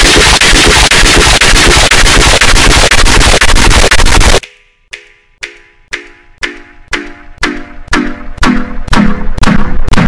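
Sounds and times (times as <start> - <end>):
loud distorted noise: 0.0 - 4.4.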